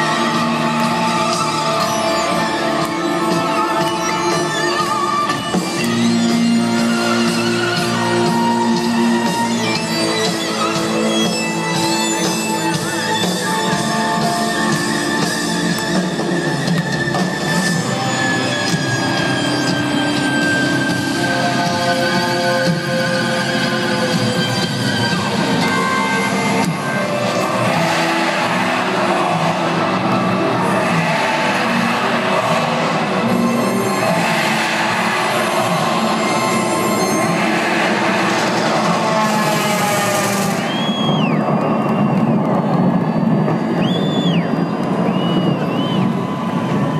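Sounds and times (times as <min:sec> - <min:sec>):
shrill whistles: 0:00.0 - 0:15.7, 0:27.3 - 0:38.8, 0:39.5 - 0:46.9
crowd roaring: 0:00.0 - 0:46.9
live rock music over loudspeakers: 0:00.0 - 0:46.9.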